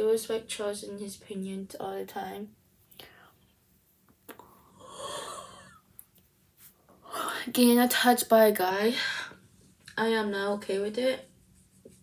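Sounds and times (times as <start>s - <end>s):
person breathing quietly: 4.4s - 5.8s
breathy yawn inhale: 4.5s - 5.8s.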